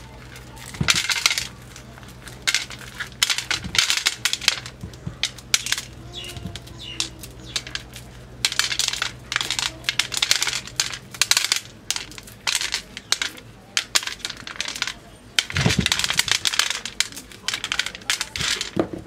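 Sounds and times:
dry crackling of kernels shelled: 0.0 - 19.0
kernels clicking on steel plate: 0.0 - 19.0.

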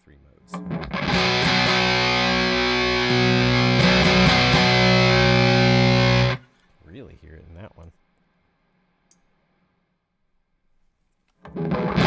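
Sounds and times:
fuzzed electric guitar chords: 0.5 - 6.4, 11.5 - 12.0.

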